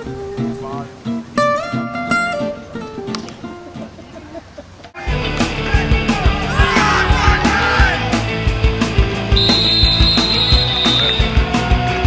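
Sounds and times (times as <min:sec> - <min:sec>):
rock music with drums: 0:05.0 - 0:12.0
referee's whistle blast: 0:09.4 - 0:11.4.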